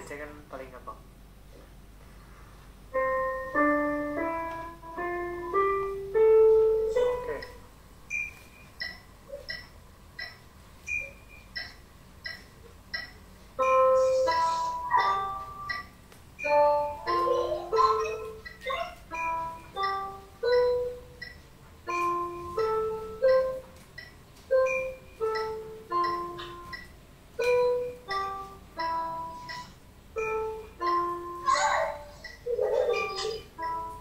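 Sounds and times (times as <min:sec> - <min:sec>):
electronic keyboard melody: 0:02.8 - 0:09.6, 0:10.2 - 0:34.0.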